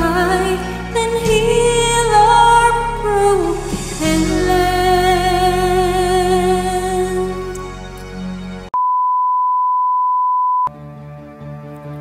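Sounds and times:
karaoke backing music: 0.0 - 8.2
slow instrumental music: 0.0 - 8.8, 10.7 - 12.0
steady electronic beep: 8.8 - 10.7.

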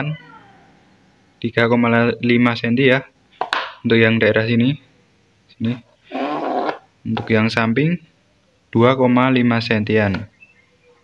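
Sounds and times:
man speaking: 5.5 - 5.9, 7.1 - 8.0.

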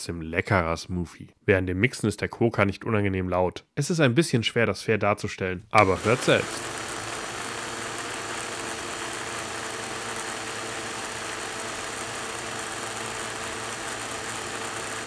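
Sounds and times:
portable blender whirring: 5.8 - 15.0.

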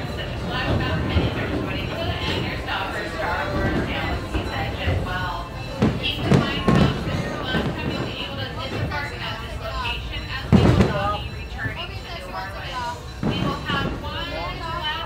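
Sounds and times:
railroad car rolling: 0.0 - 15.0
voices: 0.0 - 15.0.

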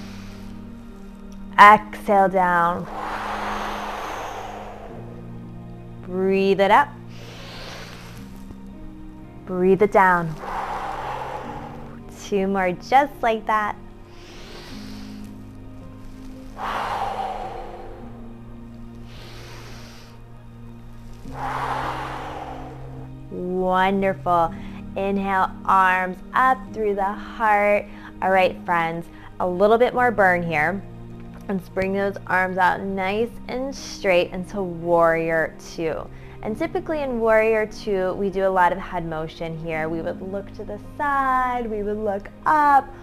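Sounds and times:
woman inhaling softly: 0.0 - 1.0, 2.8 - 5.6, 7.1 - 8.5, 10.3 - 12.2, 14.1 - 20.3, 21.1 - 23.3
breath out through pursed lips: 0.0 - 1.1, 2.8 - 5.6, 7.1 - 8.6, 10.3 - 12.2, 14.1 - 20.3, 21.0 - 23.3
soft music with sustained chords: 0.0 - 43.0
woman exhaling loudly: 2.8 - 5.4, 10.3 - 12.1, 16.6 - 18.3, 21.3 - 23.1.

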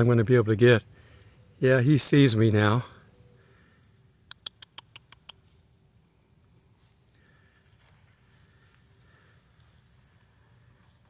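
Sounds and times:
short sharp clicks: 4.2 - 5.4.

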